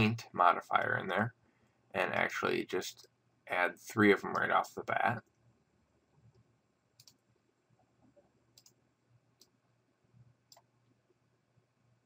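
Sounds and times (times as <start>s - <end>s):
computer mouse clicks: 6.2s - 7.3s, 8.2s - 8.8s, 9.4s - 9.6s, 10.5s - 10.7s.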